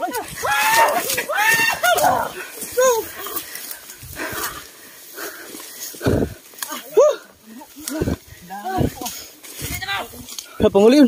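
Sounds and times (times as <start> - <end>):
men shouting and yelling: 0.0 - 11.0.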